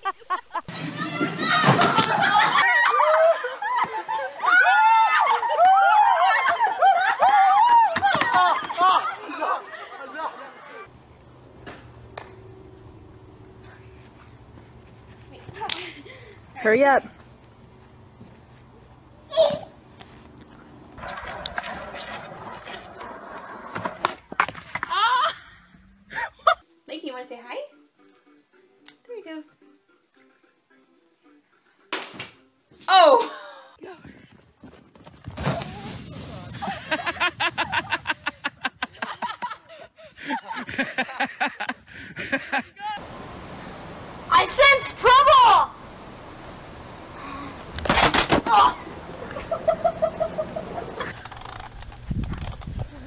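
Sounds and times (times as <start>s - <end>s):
skateboard wheels rolling on concrete: 0.7s - 10.0s, 10.8s - 25.9s, 34.4s - 39.5s, 43.0s - 53.0s
low background hum: 10.9s - 21.0s
sliding over snow: 21.0s - 24.1s, 35.0s - 38.5s
person laughing: 36.6s - 43.0s, 49.1s - 51.1s.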